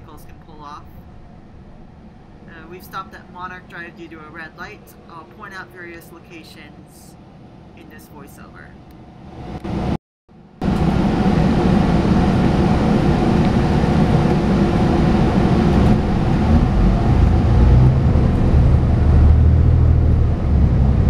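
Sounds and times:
bus engine and cabin noise: 0.0 - 10.0, 10.6 - 21.0.

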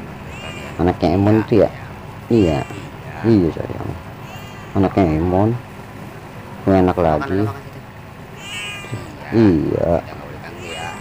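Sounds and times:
cat mewing: 0.1 - 5.6, 7.0 - 11.0
person speaking: 0.3 - 4.0, 6.6 - 8.0, 8.8 - 11.0.

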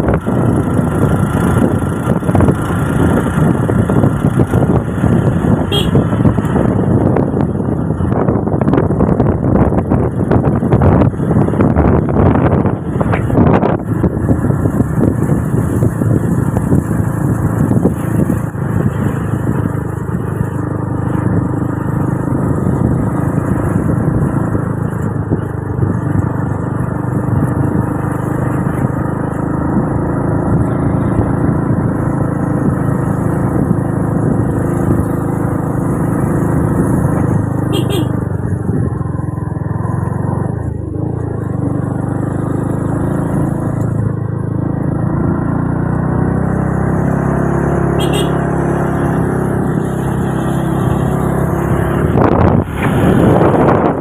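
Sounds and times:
wind on microphone: 0.0 - 44.2, 48.6 - 54.0
vehicle engine and road noise: 0.0 - 54.0.

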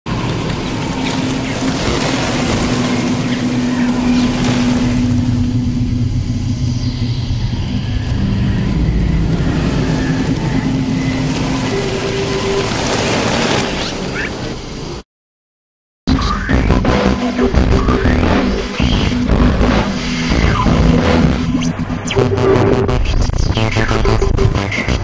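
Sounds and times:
long held tones: 0.1 - 13.2
low rumbling drone: 0.1 - 13.7, 16.1 - 25.0.

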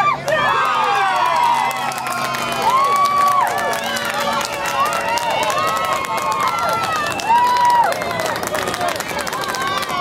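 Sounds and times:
people shouting and calling: 0.0 - 10.0.

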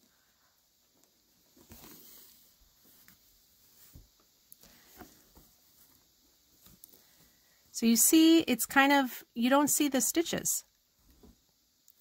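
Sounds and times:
soft fabric rustles: 0.0 - 8.5.

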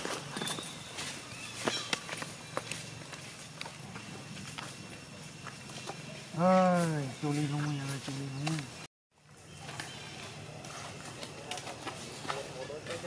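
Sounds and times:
monkeys moving on dry leaves: 0.0 - 13.0.

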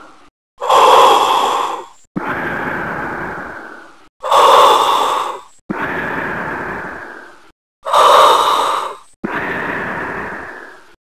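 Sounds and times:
hissing mechanical breaths: 0.0 - 11.0.

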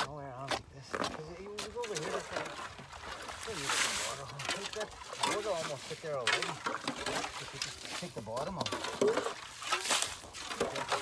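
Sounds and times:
people talking: 0.0 - 2.7, 3.4 - 8.9.

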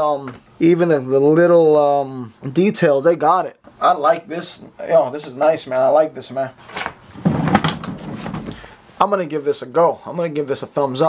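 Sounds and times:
clothing rubbing: 6.6 - 8.6.

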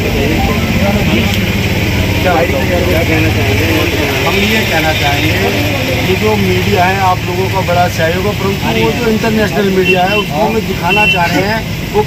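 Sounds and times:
indistinct voices talking: 0.0 - 12.0.

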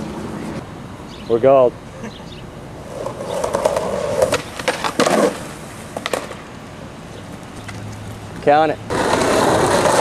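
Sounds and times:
skateboard wheels rolling on concrete: 0.0 - 0.6, 2.3 - 10.0
skateboard clacking on ground: 2.9 - 6.4, 8.9 - 10.0.

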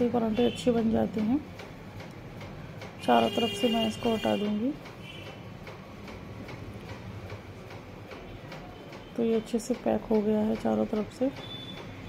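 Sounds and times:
faint regular ticking: 0.0 - 12.0.

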